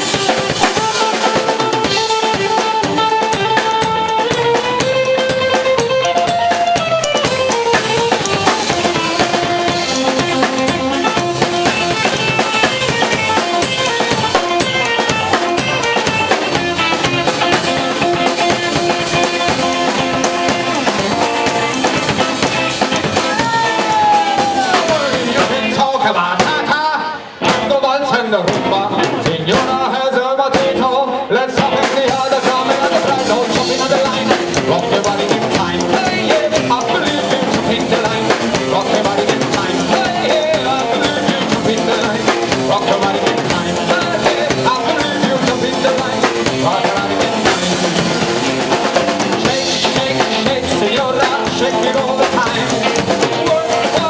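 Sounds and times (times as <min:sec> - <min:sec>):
drum kit rimshots: 0:00.0 - 0:31.0, 0:31.6 - 0:54.0
blues-rock band playing: 0:00.0 - 0:54.0
electric guitar: 0:00.0 - 0:54.0.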